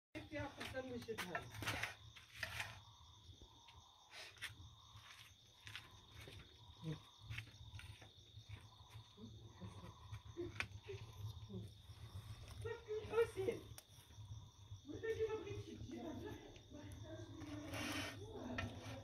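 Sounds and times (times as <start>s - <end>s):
crickets trilling: 0.2s - 19.0s.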